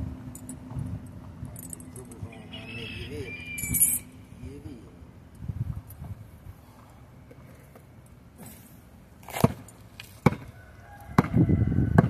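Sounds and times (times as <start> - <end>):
basketball bouncing on asphalt: 9.3 - 12.0.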